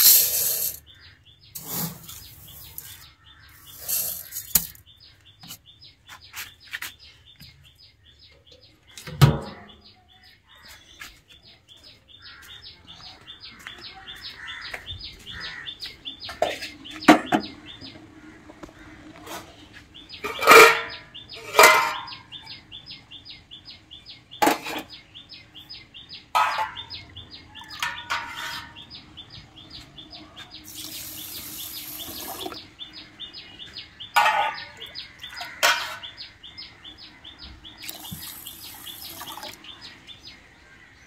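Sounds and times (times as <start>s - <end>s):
steel vessels clanking: 0.0s - 0.8s, 1.6s - 4.8s, 20.2s - 22.4s, 26.3s - 27.0s, 27.6s - 28.9s, 30.6s - 32.7s, 34.2s - 36.2s
bird chirping: 0.0s - 41.0s
water poured into pot: 30.7s - 32.6s, 37.8s - 39.6s.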